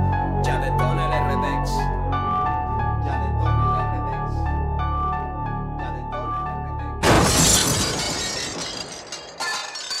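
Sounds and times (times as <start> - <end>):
soft instrumental music: 0.0 - 7.0
glass shattering crash: 7.0 - 10.0
glass clinks: 7.5 - 10.0.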